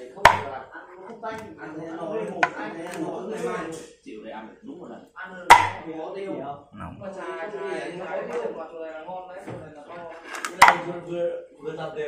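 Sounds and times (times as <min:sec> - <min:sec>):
people talking in background: 0:00.0 - 0:12.0
cleaver chopping on wooden board: 0:00.3 - 0:00.5, 0:05.5 - 0:05.8.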